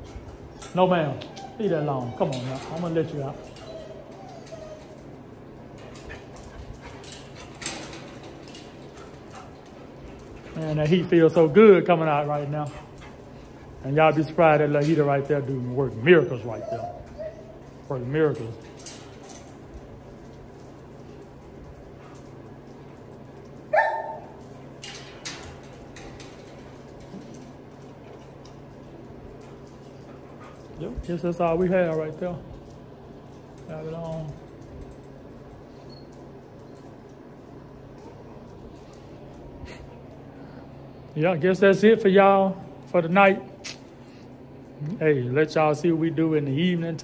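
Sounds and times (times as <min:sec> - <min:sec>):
fan heater humming: 0:00.0 - 0:47.0
dog barking: 0:23.7 - 0:24.3.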